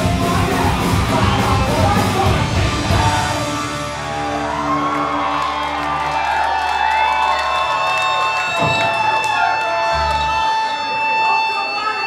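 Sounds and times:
punk rock band playing: 0.0 - 6.2
crowd cheering and whooping: 2.8 - 12.0
steady high tone: 8.7 - 12.0.

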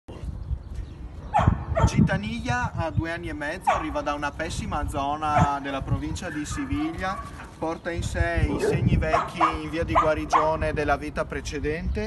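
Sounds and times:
dog barking: 1.3 - 2.0, 3.7 - 4.0, 6.3 - 7.5, 8.6 - 10.6.

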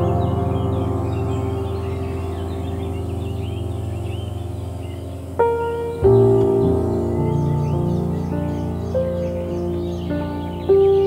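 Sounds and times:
ambient music with low drone: 0.0 - 11.0
birds chirping: 0.0 - 11.0.

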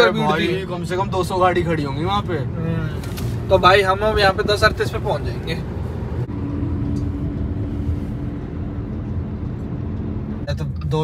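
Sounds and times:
road and engine rumble in car cabin: 0.0 - 11.0.

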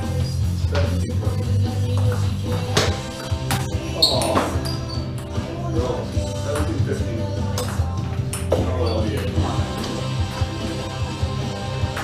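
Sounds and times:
background music: 0.0 - 12.0
table tennis ball hits: 1.9 - 5.3, 7.5 - 10.0.

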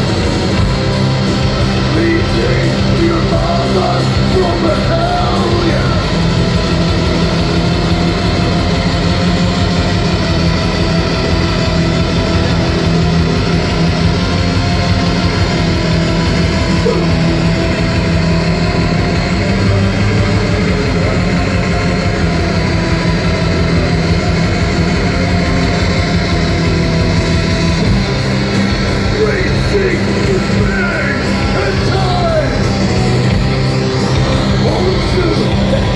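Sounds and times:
distorted electric guitars: 0.0 - 35.9
fast drum machine beat: 0.0 - 35.9.

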